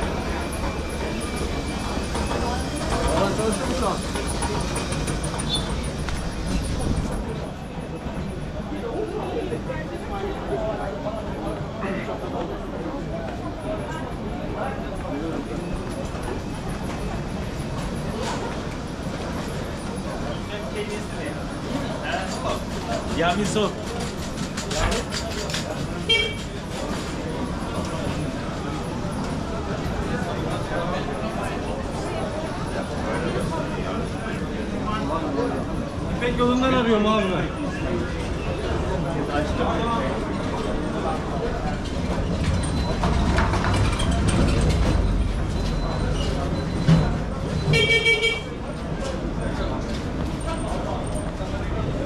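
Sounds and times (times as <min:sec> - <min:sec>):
street chatter: 0:00.0 - 0:52.0
traffic noise: 0:00.0 - 0:52.0
vehicle horn toot: 0:26.1 - 0:26.5, 0:47.7 - 0:48.6.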